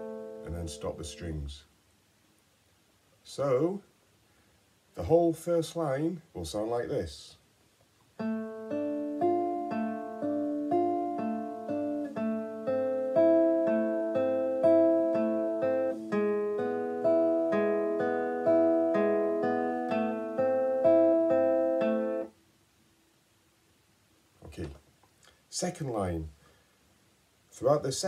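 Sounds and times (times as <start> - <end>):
classical guitar arpeggio: 0.0 - 1.2, 8.2 - 22.3.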